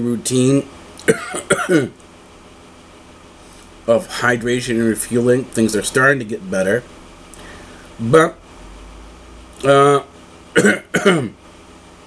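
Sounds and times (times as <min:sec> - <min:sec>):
man coughing: 0:01.0 - 0:02.0, 0:10.6 - 0:11.4.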